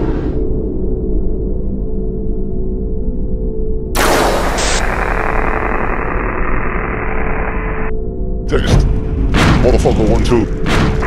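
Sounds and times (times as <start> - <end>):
low hum: 0.0 - 9.3
static hiss: 4.1 - 7.9.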